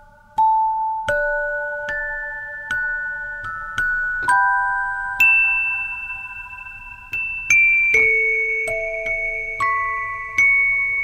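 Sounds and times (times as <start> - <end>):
lullaby on bell-like mallet notes: 0.0 - 11.0.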